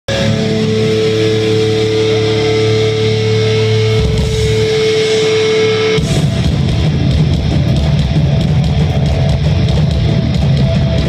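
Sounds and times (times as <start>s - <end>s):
distorted electric guitar chord: 0.1s - 11.0s
live heavy band playing: 0.1s - 11.0s.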